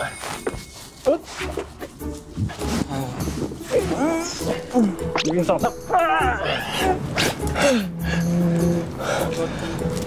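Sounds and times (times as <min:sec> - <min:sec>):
person crying out: 0:05.8 - 0:07.1.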